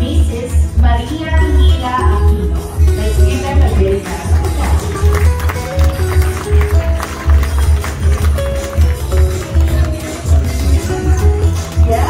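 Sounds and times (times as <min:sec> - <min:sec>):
live band dance music: 0:00.0 - 0:12.0.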